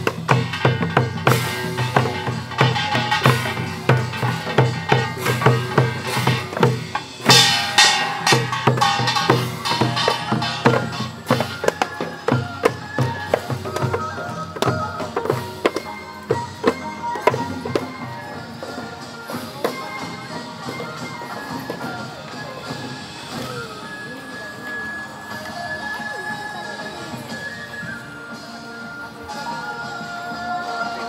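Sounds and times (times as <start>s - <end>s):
drum strikes: 0.0s - 23.6s
folk melody: 0.0s - 31.0s.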